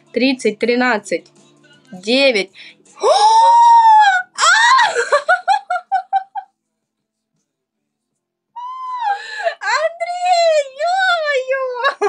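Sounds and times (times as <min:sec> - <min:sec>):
woman screaming with delight: 0:03.0 - 0:05.1
woman giggling: 0:04.8 - 0:06.5.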